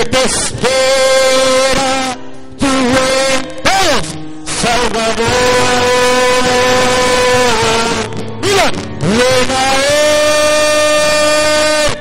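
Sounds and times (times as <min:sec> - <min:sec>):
man singing a long high note: 0:00.0 - 0:12.0.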